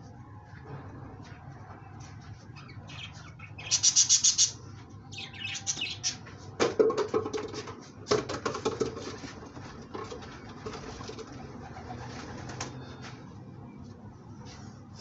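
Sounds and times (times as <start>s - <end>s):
pigeon wings flapping: 10.6s - 12.8s.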